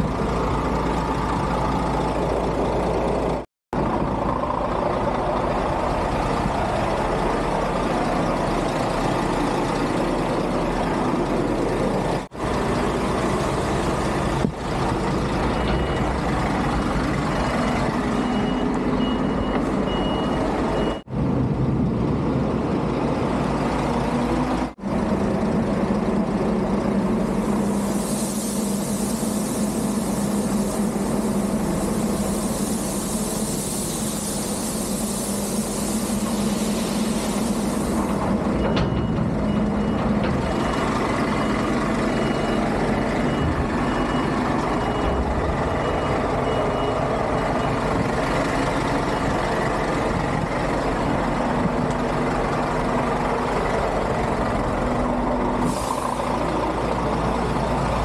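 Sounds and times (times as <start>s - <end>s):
heavy diesel engines running: 0.0s - 58.0s
reversing alarm beeping: 15.4s - 16.2s, 17.1s - 21.1s, 38.0s - 48.0s, 49.0s - 49.4s
air hiss: 27.2s - 38.4s, 55.6s - 58.0s
grain pouring hiss: 27.3s - 38.2s.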